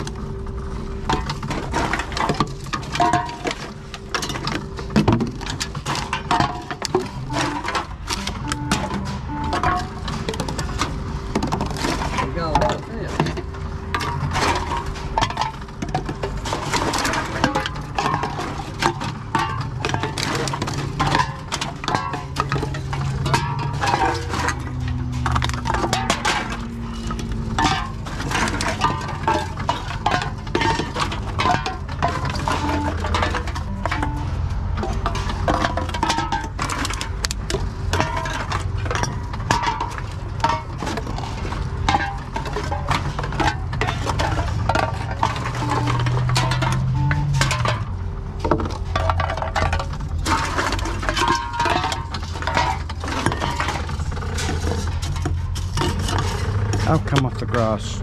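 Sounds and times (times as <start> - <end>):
cans and bottles clattering: 0.0 - 58.0.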